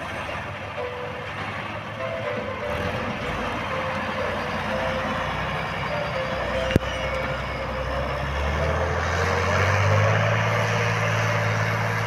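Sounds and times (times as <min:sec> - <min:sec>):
tractor diesel engine under load: 0:00.0 - 0:12.0
melody: 0:00.4 - 0:12.0.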